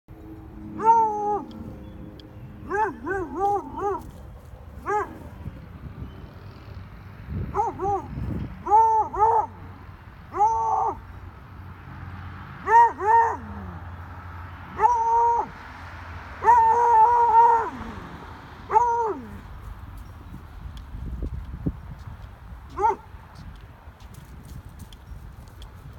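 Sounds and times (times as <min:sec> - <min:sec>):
dog baying bark: 0:00.8 - 0:01.6, 0:02.6 - 0:04.1, 0:04.8 - 0:05.4, 0:07.5 - 0:09.6, 0:12.6 - 0:13.8, 0:22.7 - 0:23.1.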